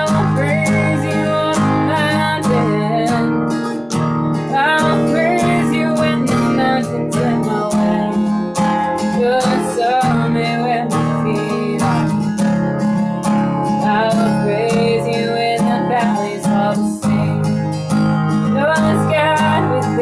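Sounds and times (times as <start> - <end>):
acoustic guitar strumming chords: 0.0 - 20.0
woman singing: 0.0 - 20.0.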